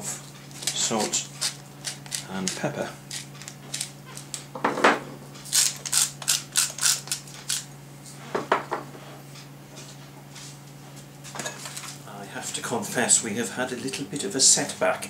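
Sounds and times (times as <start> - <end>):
pepper mill grinding: 0.5 - 4.4, 5.5 - 7.7.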